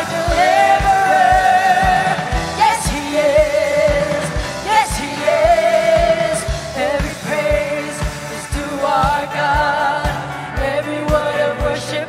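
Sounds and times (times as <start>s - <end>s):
band playing: 0.0s - 12.0s
women singing with vibrato: 0.0s - 12.0s.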